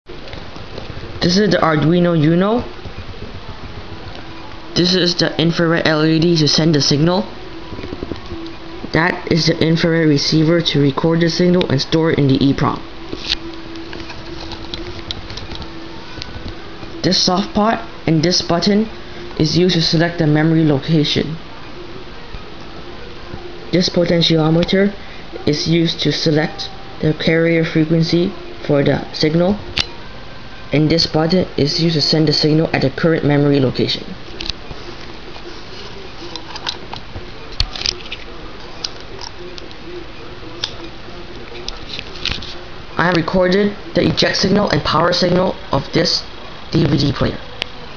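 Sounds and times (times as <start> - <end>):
low steady hum: 0.1 - 47.9
steady room hiss: 0.1 - 47.9
camera handling clicks and rustling: 37.6 - 38.2.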